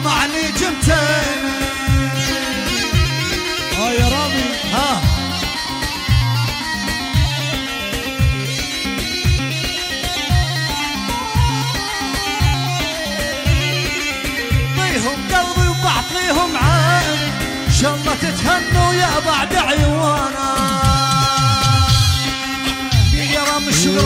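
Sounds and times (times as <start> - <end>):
heavy drum beat: 0.0 - 12.6, 14.5 - 24.0
reed pipe melody: 0.0 - 24.0.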